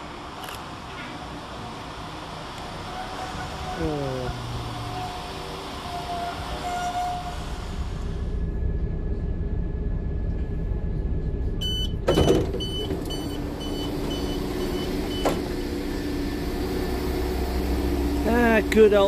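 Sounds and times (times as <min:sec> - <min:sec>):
diesel train rumbling: 0:00.0 - 0:19.0
door warning beeps: 0:11.6 - 0:15.4
sliding door thud: 0:12.0 - 0:15.6.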